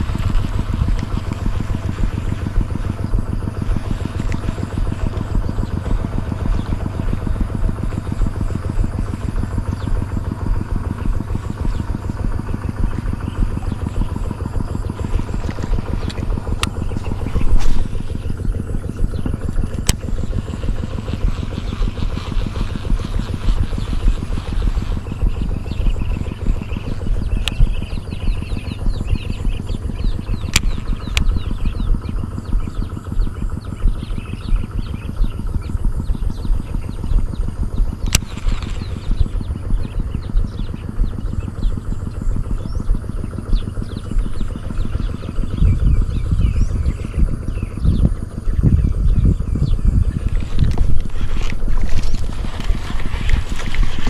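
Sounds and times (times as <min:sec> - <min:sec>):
sharp clicks: 0:00.0 - 0:41.6, 0:49.3 - 0:54.0
small engine running: 0:00.0 - 0:54.0.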